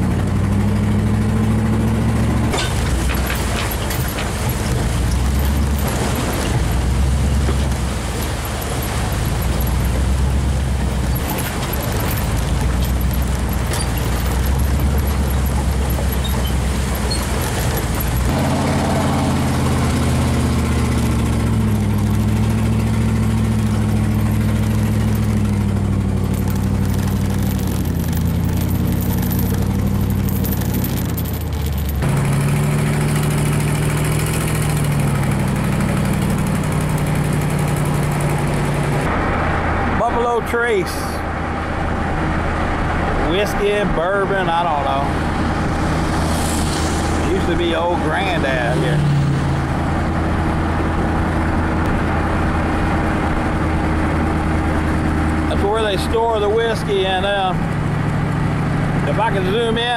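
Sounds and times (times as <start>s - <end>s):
road noise: 0.0s - 59.9s
vehicle engine hum: 0.0s - 59.9s.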